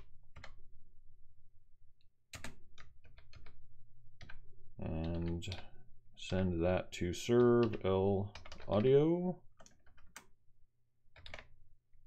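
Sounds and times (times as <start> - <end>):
computer keyboard keystrokes: 2.3 - 3.6, 5.0 - 5.7, 7.3 - 9.0, 9.6 - 10.3, 11.2 - 11.5.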